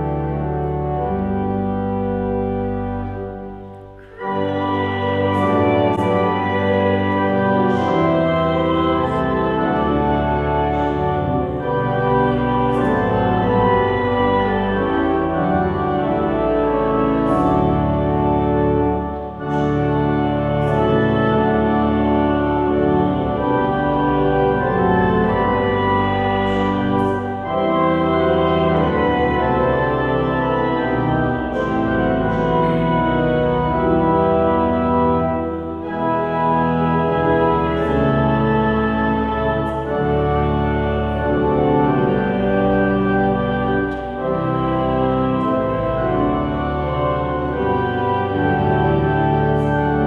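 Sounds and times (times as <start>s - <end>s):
church organ playing chords: 0.0s - 50.0s.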